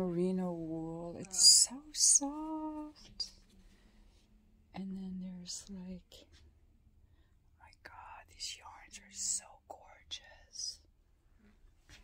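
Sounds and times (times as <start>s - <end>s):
woman whispering: 0.0s - 3.4s, 4.8s - 6.4s, 7.6s - 10.9s.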